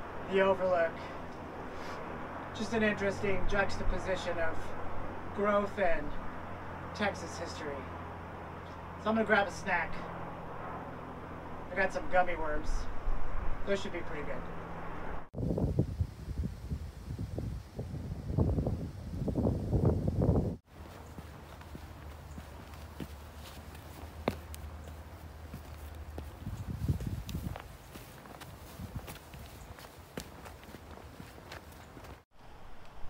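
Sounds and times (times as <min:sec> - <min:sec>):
wind rumble on microphone: 0:12.6 - 0:20.6, 0:25.6 - 0:33.0
footsteps on dirt and wood: 0:20.6 - 0:32.3.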